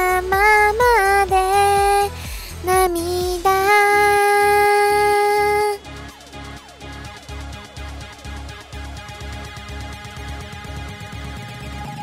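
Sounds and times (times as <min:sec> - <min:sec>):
karaoke backing track: 0:00.0 - 0:12.0.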